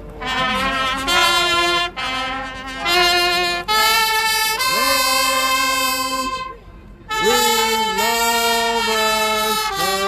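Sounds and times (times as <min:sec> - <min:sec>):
saxophone long note: 0:00.2 - 0:10.0.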